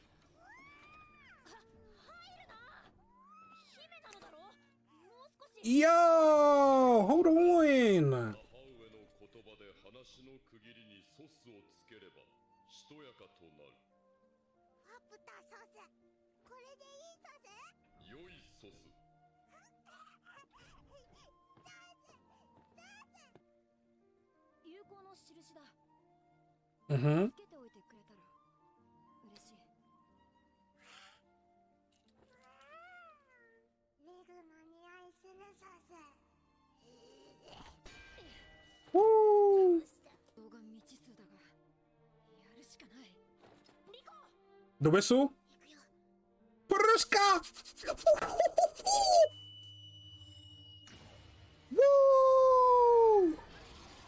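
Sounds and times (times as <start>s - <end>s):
soft background music: 0.0s - 54.0s
high-pitched squeaky creature voice: 47.2s - 49.4s
faint steady high tone: 48.9s - 51.1s.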